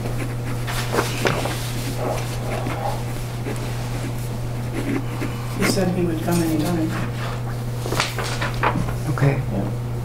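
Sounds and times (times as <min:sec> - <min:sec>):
steady low hum: 0:00.0 - 0:10.0
papers rustling: 0:00.2 - 0:04.3, 0:05.7 - 0:09.1.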